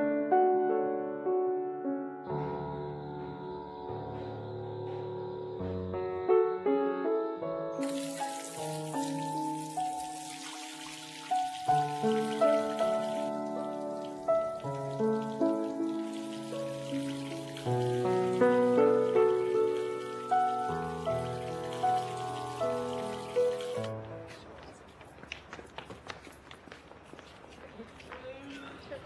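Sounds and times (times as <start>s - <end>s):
slow piano melody: 0.0s - 24.5s
tap water splashing onto hands: 7.8s - 24.0s.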